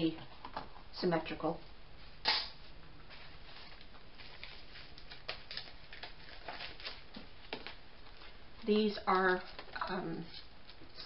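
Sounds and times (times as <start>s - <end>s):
card and plastic rustling: 3.1s - 10.9s.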